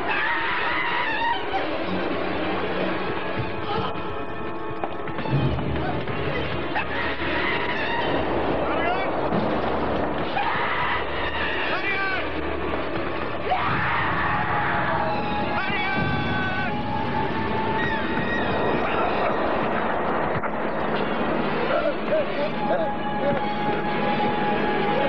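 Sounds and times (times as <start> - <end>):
dramatic background music: 0.0 - 25.0
steady rushing noise: 0.8 - 25.0.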